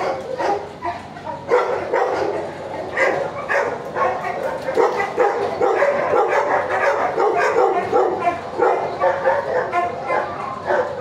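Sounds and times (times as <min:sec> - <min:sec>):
dogs barking and yipping: 0:00.0 - 0:11.0.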